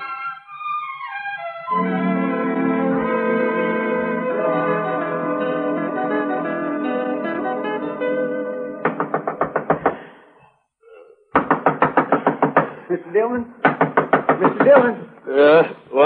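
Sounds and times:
orchestral music: 0.0 - 9.0
pounding knocks on wooden door: 8.8 - 10.0, 11.4 - 12.8, 13.6 - 15.0.

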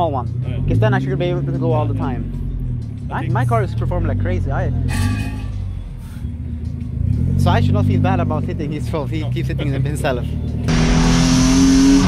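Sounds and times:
car engine running: 5.4 - 12.0.

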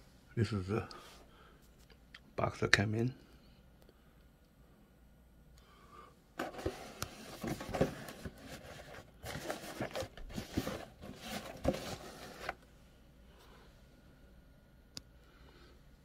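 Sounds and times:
cardboard rubbing and scraping: 6.4 - 12.6.

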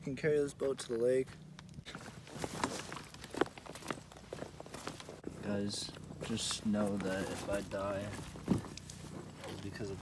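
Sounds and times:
footsteps walking: 0.8 - 10.0
knocks and rustles of gear: 1.7 - 5.2, 6.1 - 10.0.

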